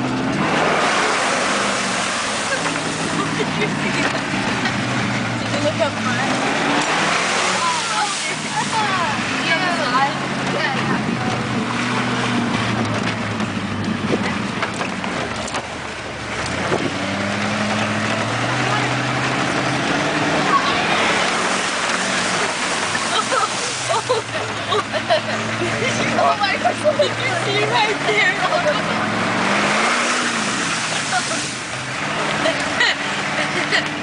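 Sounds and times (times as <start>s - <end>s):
engine revving hard: 0.0s - 14.5s, 16.2s - 34.0s
water and mud splashing: 0.0s - 34.0s.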